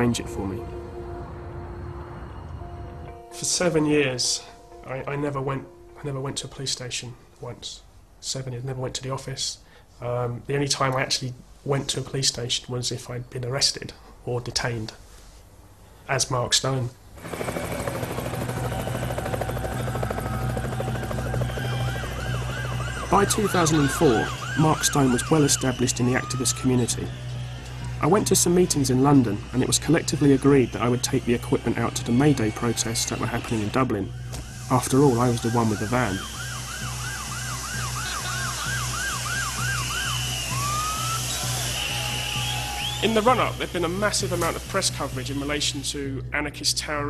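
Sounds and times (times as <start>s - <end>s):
low pulsing music: 0.0s - 7.0s, 17.2s - 46.9s
siren sweeping up and down: 17.2s - 45.6s
helicopter rotor chop: 17.2s - 45.7s.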